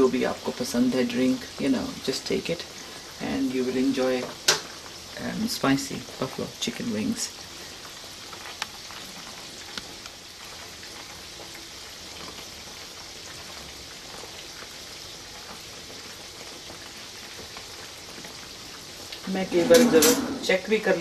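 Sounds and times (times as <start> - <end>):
chicken wings frying in oil: 0.0 - 21.0.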